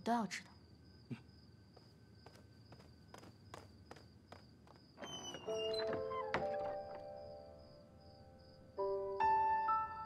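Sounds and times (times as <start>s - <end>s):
soft footsteps: 1.7s - 5.0s.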